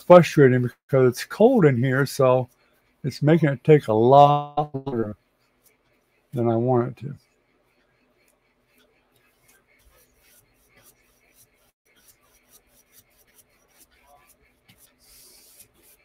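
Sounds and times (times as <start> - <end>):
paintbrush stroking on canvas: 0.4 - 4.0, 5.1 - 16.0.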